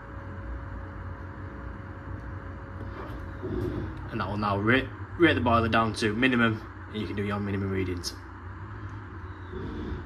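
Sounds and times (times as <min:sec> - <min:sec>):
boiler fan and burner running: 0:00.0 - 0:10.0
faint steady whine: 0:00.0 - 0:10.0.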